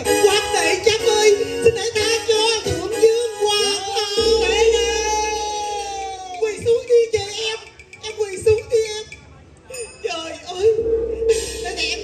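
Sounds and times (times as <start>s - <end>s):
band accompaniment: 0.0s - 9.2s.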